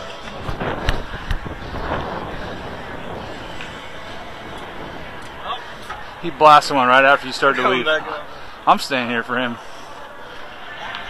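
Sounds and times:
wind rumbling on microphone: 0.0s - 7.8s
faint distant voices: 0.0s - 11.0s.

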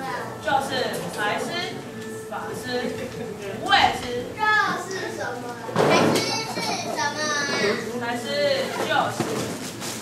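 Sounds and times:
child speaking: 4.4s - 7.9s.

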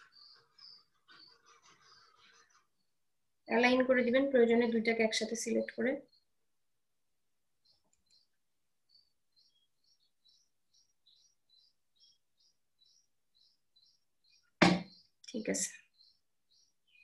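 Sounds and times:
small bird chirping: 0.0s - 3.6s, 7.5s - 17.0s.

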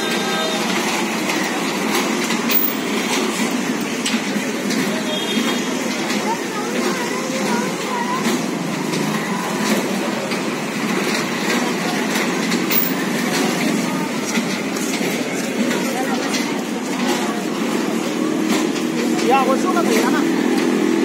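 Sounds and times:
crowd voices: 0.0s - 21.0s
ride machinery rumble: 0.0s - 21.0s.

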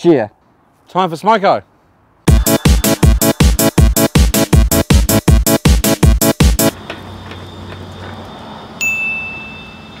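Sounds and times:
bright high-pitched chime: 8.8s - 10.0s.

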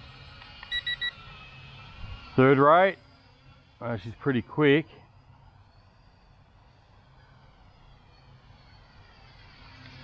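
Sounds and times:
toy drone propellers buzzing: 6.0s - 10.0s.

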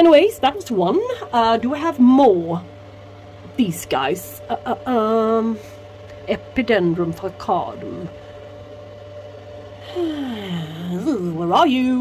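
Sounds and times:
steady low hum: 0.0s - 12.0s
woman humming wordlessly: 9.8s - 11.6s.

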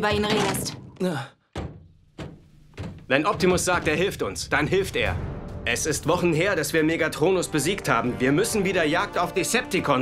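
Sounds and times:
cartoon dull thunks: 0.1s - 4.0s.

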